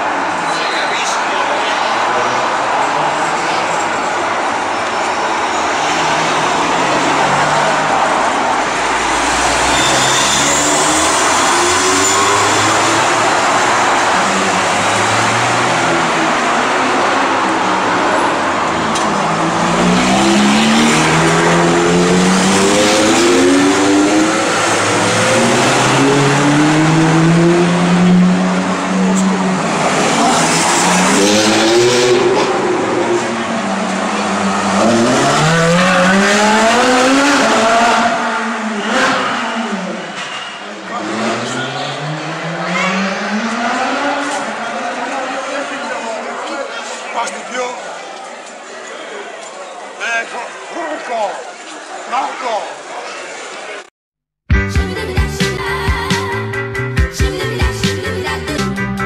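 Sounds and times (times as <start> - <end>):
sports car engines revving: 0.0 - 46.4.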